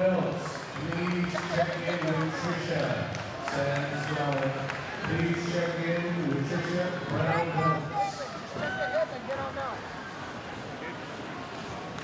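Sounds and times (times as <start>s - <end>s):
indistinct voices in a hall: 0.0s - 12.0s.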